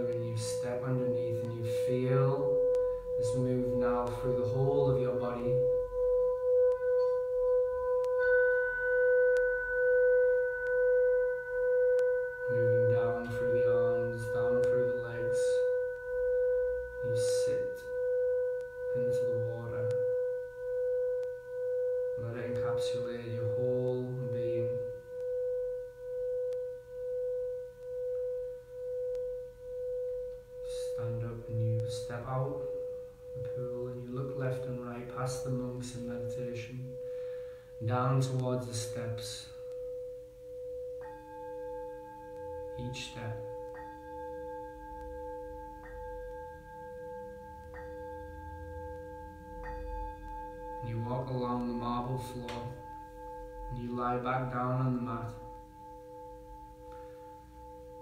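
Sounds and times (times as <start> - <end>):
singing bowl ringing: 0.0 - 58.0.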